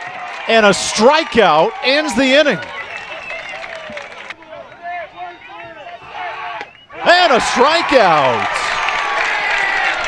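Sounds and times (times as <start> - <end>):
stadium crowd noise hiss: 0.0 - 10.0
broadcast commentary speech: 7.0 - 8.7.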